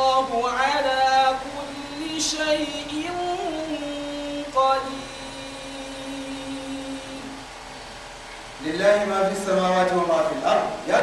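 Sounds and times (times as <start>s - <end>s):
man reciting long note: 0.0s - 7.5s.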